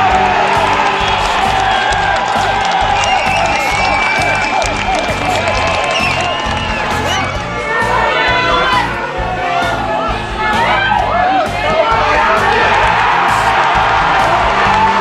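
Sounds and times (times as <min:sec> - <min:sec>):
background music with beat: 0:00.0 - 0:15.0
football crowd cheering: 0:00.0 - 0:15.0.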